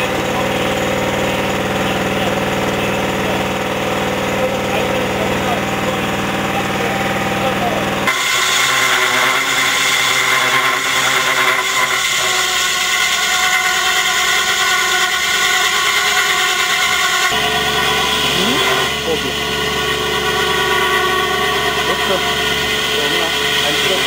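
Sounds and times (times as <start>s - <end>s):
engine humming: 0.0s - 8.2s, 9.2s - 24.0s
core drill grinding into stone: 0.0s - 24.0s.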